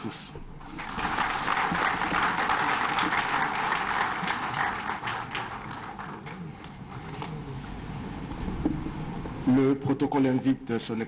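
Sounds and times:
audience applauding: 0:00.6 - 0:06.7.

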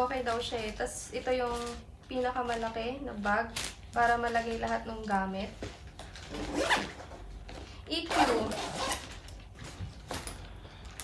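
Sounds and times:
backpack zipper pulled shut: 0:06.3 - 0:07.0, 0:08.1 - 0:09.1.

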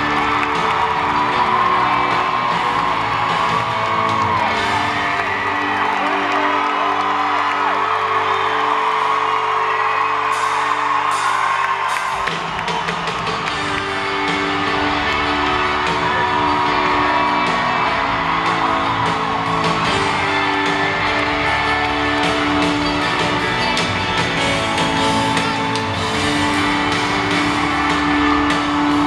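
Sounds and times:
crowd whooping: 0:00.0 - 0:29.0
live band playing: 0:00.0 - 0:29.0.

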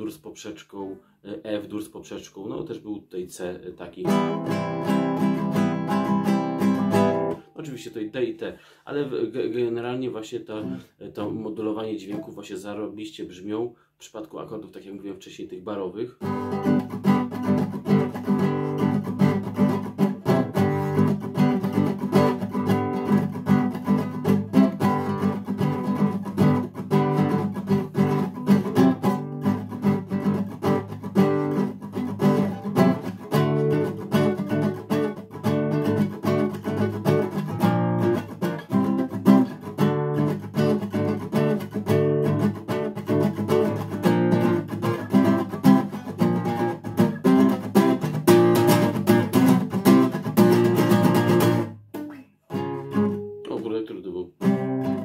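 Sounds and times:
nylon-string guitar strummed: 0:04.0 - 0:08.3, 0:12.0 - 0:12.4, 0:16.2 - 0:55.0.

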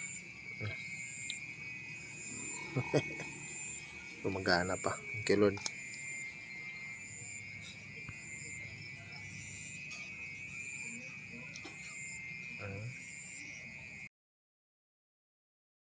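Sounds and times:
insect chirps: 0:00.0 - 0:14.1
insects trilling: 0:00.0 - 0:14.1
low vocal sound: 0:02.3 - 0:03.4.

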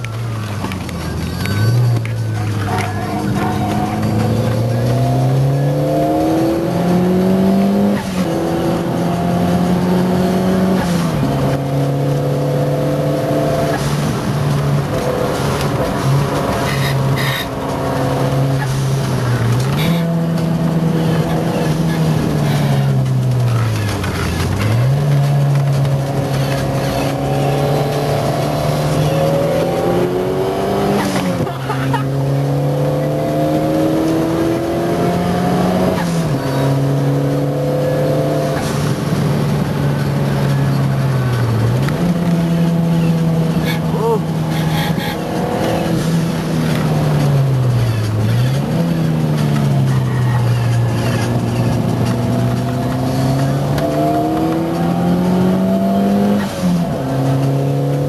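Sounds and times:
race car engine running hard: 0:00.0 - 0:58.0.

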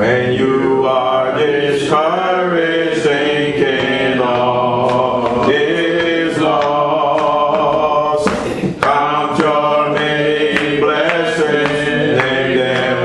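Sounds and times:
man singing a hymn: 0:00.0 - 0:13.0.

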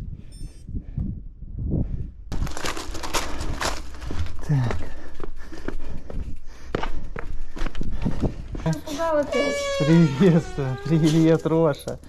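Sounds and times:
bike tyres crunching over gravel: 0:02.3 - 0:04.9.

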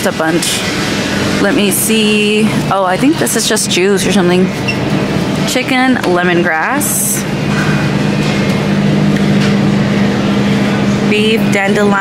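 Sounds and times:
refrigerator hum with hiss: 0:00.0 - 0:12.0.

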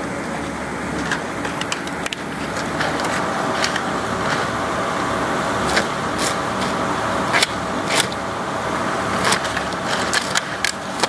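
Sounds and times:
steady mechanical engine noise: 0:00.0 - 0:11.0
plastic scrap clacking: 0:00.2 - 0:04.5, 0:05.7 - 0:08.2, 0:09.2 - 0:11.0.

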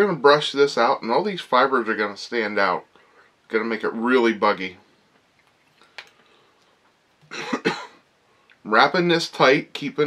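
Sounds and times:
man coughing: 0:07.3 - 0:08.0.

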